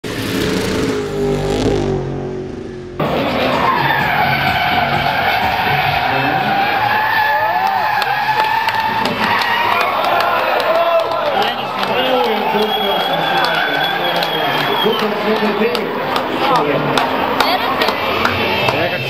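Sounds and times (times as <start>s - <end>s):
low droning sound: 0.0s - 3.5s
car engine: 0.0s - 19.0s
tyres squealing: 3.0s - 19.0s.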